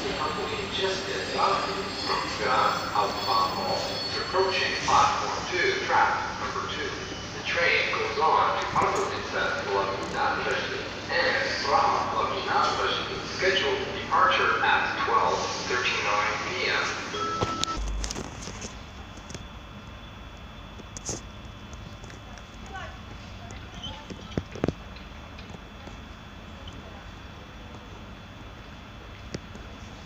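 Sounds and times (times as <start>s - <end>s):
voices: 0.0s - 17.8s
train low hum: 0.0s - 30.0s.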